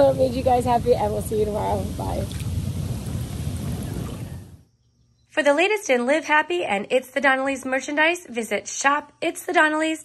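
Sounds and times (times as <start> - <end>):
hot tub jets bubbling: 0.0 - 4.5.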